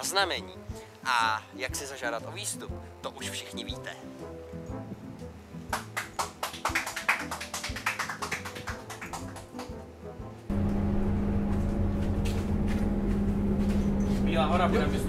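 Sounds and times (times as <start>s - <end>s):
bus engine hum and rumble: 10.5s - 15.0s.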